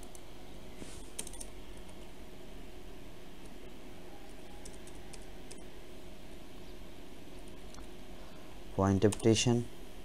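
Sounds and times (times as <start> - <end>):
steady low hum: 0.0 - 10.0
keyboard keys clicking: 1.2 - 2.0, 4.6 - 5.6.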